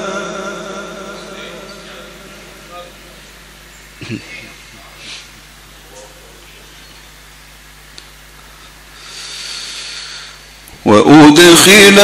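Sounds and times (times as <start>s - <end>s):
loudspeaker hiss: 0.0s - 12.0s
steady low hum: 0.0s - 12.0s
breath into microphone: 8.9s - 10.5s.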